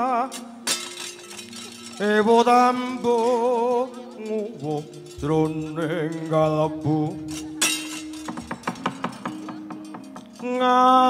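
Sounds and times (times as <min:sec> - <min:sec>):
gamelan playing struck notes: 0:00.3 - 0:11.0.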